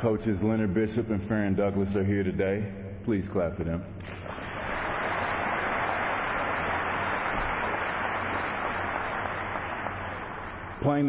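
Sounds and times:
large audience applauding: 4.0 - 11.0.

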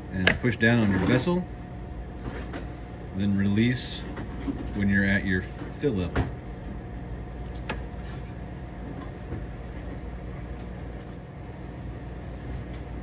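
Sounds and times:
machine hum: 0.0 - 13.0.

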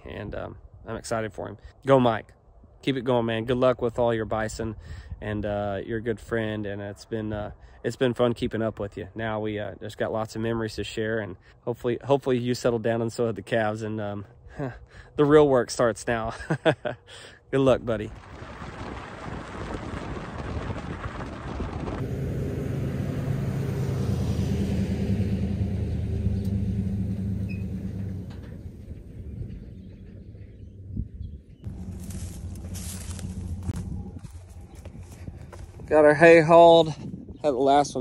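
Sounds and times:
pickup truck engine: 18.8 - 35.6
trailer rumbling: 18.9 - 35.9.

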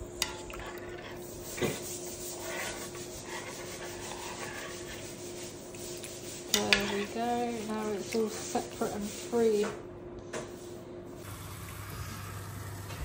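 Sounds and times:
spoon stirring noodle soup: 0.1 - 9.3.

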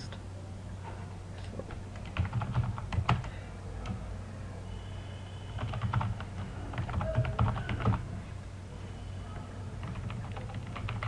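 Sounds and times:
computer keyboard typing: 1.9 - 4.0, 5.5 - 8.1, 9.4 - 11.0.

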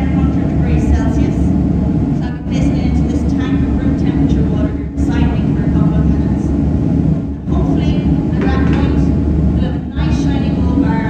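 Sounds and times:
woman talking through microphone: 0.0 - 1.5, 2.2 - 6.6, 7.4 - 11.0
steady low rumble: 0.0 - 11.0.

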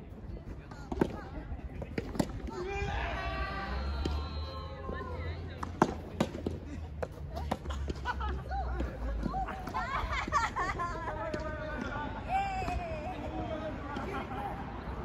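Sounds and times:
players calling: 1.9 - 15.0.

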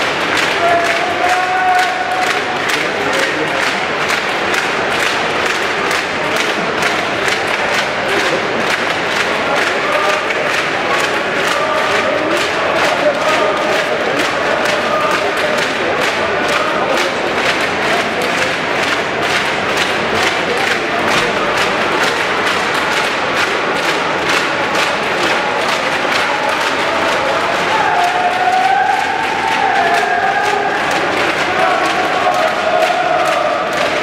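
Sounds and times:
crowd shouting and chanting: 0.0 - 34.0
rhythmic clapping: 0.0 - 34.0.

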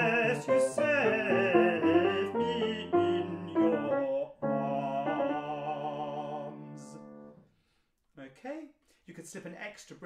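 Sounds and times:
man's voice: 0.0 - 7.0.

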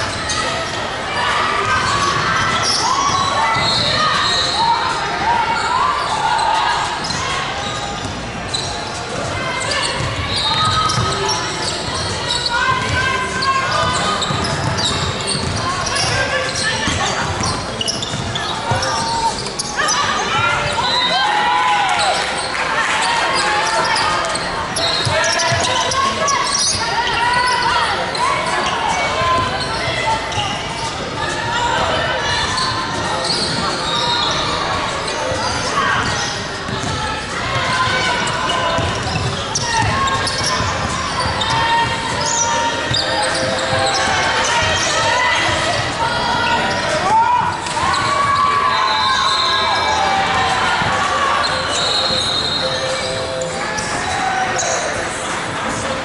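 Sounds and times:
players calling out: 0.0 - 56.0
basketball dribbling: 13.8 - 16.2, 16.9 - 18.9, 37.9 - 42.2.

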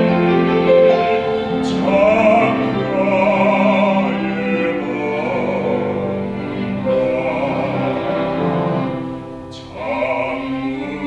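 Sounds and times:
baritone singing: 0.0 - 11.0
piano and strings accompaniment: 0.0 - 11.0.

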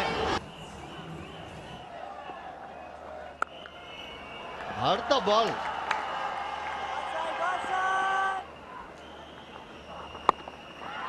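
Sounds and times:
stadium ground noise: 0.0 - 11.0.

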